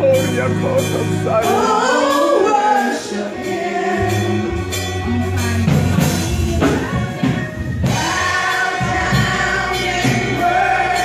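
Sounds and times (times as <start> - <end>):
instrumental accompaniment: 0.0 - 11.0
women singing gospel: 1.4 - 11.0.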